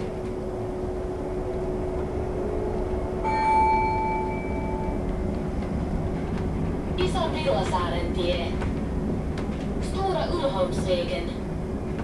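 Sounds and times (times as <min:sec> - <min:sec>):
electronic chime: 0:03.2 - 0:05.0
bus road rumble: 0:04.0 - 0:12.0.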